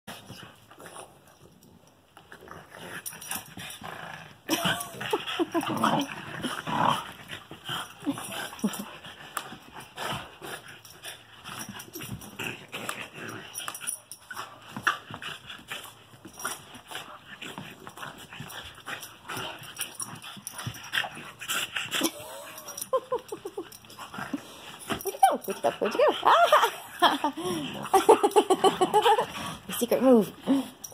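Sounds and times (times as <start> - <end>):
dogs scuffling and tussling: 0.1 - 30.9
dog vocal sounds: 4.5 - 9.1, 16.4 - 30.9.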